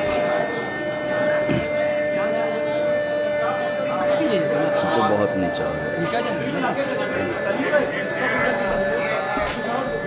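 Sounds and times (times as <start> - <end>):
indistinct chatter: 0.0 - 10.0
steady high-pitched tone: 0.0 - 10.0.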